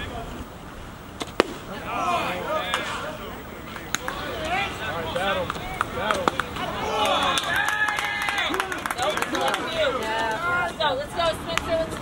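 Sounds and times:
faint voices: 0.0s - 12.0s
ball popping into mitt: 1.2s - 1.7s.

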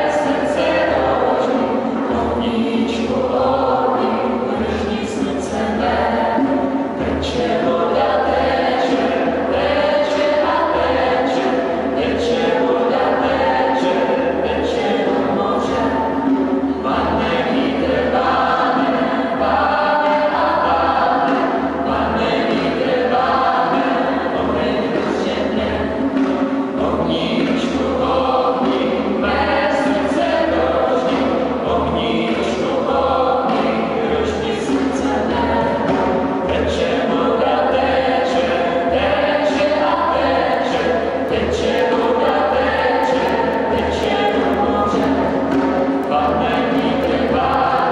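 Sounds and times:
group singing chant-like lines: 0.0s - 47.9s
hand drum slow beat: 0.0s - 47.9s.

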